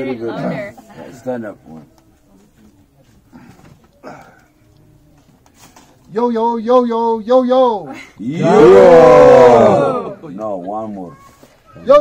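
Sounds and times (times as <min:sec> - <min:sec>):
murmured voices: 0:00.0 - 0:07.2, 0:07.8 - 0:12.0.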